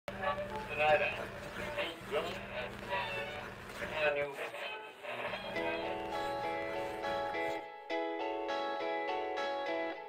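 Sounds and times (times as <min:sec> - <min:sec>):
voice from small radio: 0:00.1 - 0:06.2.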